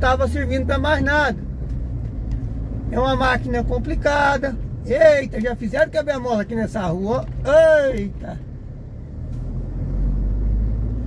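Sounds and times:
car rumble inside cabin: 0.0 - 11.0.

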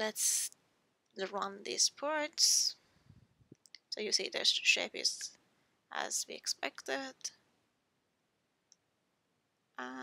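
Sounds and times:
person speaking: 0.0 - 0.6, 1.2 - 2.8, 3.8 - 5.3, 5.9 - 7.3, 9.8 - 10.0.

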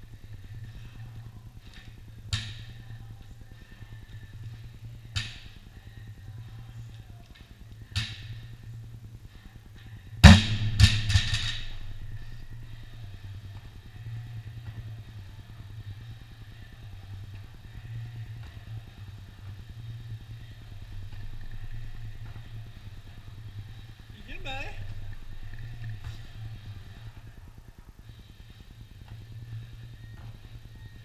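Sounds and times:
steady low hum: 0.0 - 31.0
barbell crashing on rubber floor: 10.2 - 12.0
barbell bouncing: 10.2 - 12.6.

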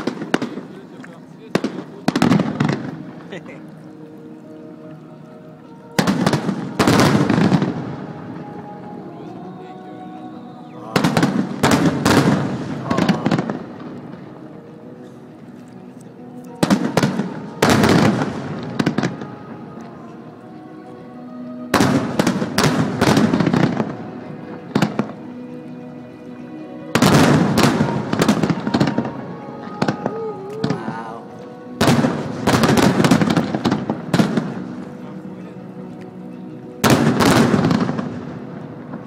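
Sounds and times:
fireworks bursting with sharp cracks: 0.0 - 3.6, 6.0 - 8.4, 11.0 - 14.3, 16.6 - 19.3, 21.7 - 25.2, 26.9 - 31.2, 31.8 - 34.9, 36.8 - 39.0
music playing: 0.0 - 39.0.

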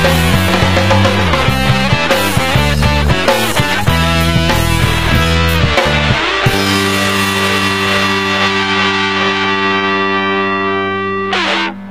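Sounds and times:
distorted electric guitar chord: 0.0 - 11.9.

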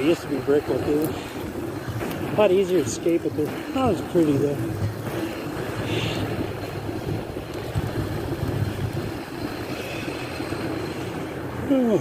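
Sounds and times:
skate wheels rolling on wet asphalt: 0.0 - 12.0.

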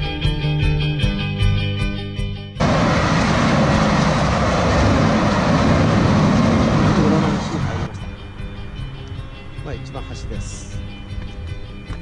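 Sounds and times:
passenger train passing: 2.6 - 8.9.

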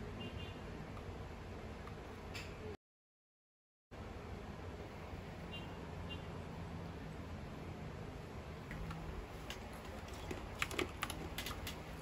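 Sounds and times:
mechanical keyboard typing: 10.2 - 11.8.

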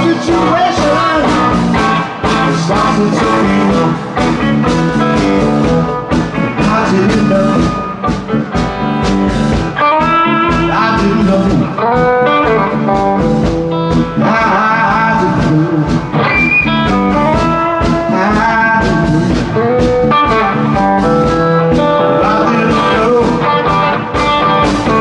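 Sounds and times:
bass: 0.0 - 25.0
electric guitar bent notes: 0.0 - 25.0
steady drum beat: 0.0 - 25.0.

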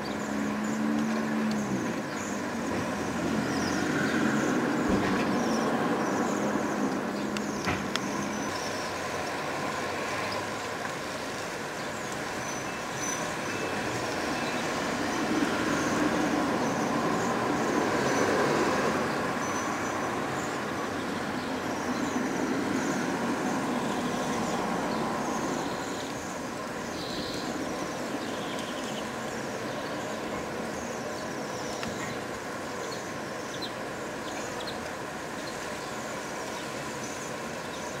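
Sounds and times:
distant transport rumble: 0.0 - 38.0.

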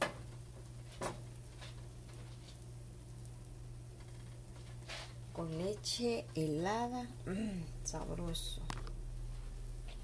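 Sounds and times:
pancakes sizzling in a pan: 0.0 - 6.2
steady low hum: 0.0 - 10.0.

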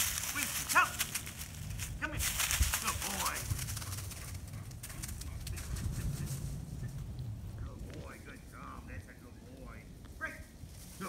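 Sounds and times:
dry leaves crackling and rustling: 0.0 - 11.0.

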